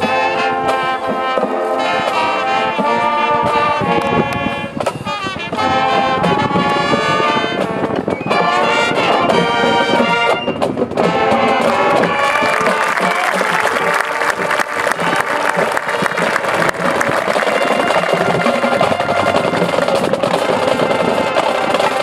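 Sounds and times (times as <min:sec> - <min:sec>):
drums and percussion: 0:00.0 - 0:22.0
marching band playing: 0:00.0 - 0:22.0.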